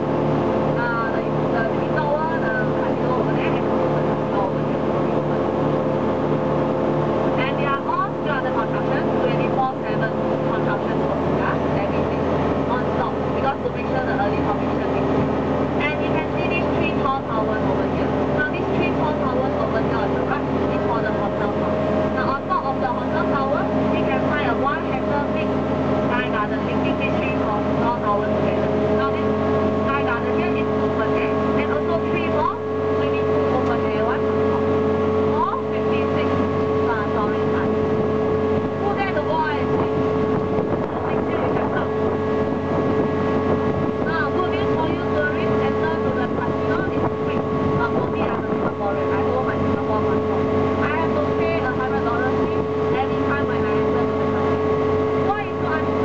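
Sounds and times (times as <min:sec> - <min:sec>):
engine droning: 0:00.0 - 0:56.0.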